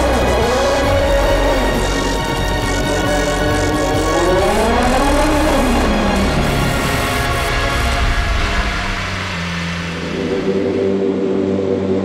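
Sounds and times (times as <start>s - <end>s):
race car engine revving: 0.0s - 11.7s
background music: 0.0s - 12.0s.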